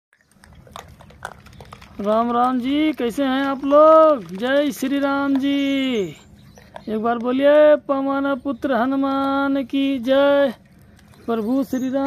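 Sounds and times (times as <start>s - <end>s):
taps and clicks on concrete: 0.2s - 5.8s.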